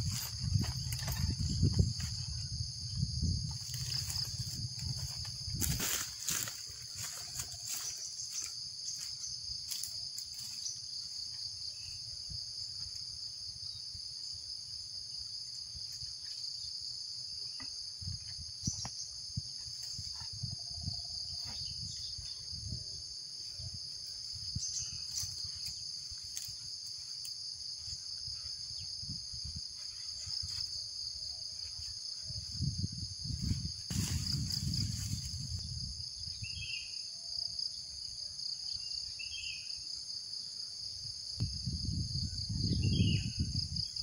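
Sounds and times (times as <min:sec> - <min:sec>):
footsteps on dry leaves: 0:00.0 - 0:02.5, 0:03.5 - 0:10.8, 0:33.5 - 0:35.6
insects chorus: 0:00.0 - 0:44.0.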